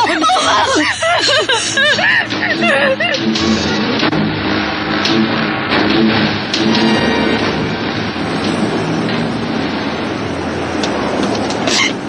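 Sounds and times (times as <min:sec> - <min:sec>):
low even hum: 0:00.0 - 0:11.8
moving vehicle running noise: 0:00.0 - 0:12.0.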